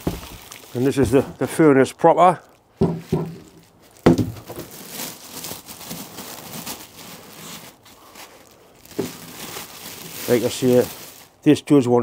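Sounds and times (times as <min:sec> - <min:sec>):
plastic bag crinkling: 0:00.0 - 0:01.6, 0:02.4 - 0:11.6.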